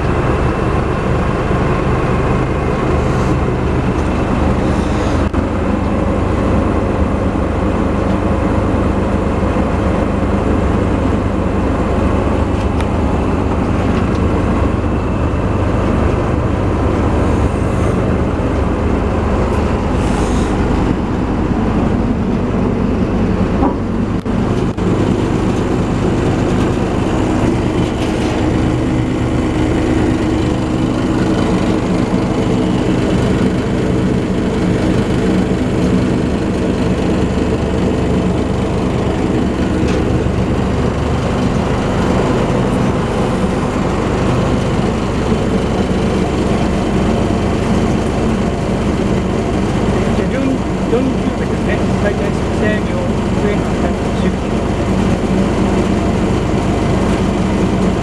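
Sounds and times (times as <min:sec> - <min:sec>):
diesel engine and spreader drive drone: 0:00.0 - 0:58.0.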